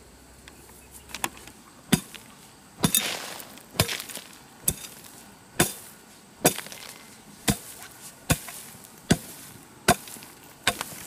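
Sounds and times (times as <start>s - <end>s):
hoe striking dry soil: 1.0s - 11.0s.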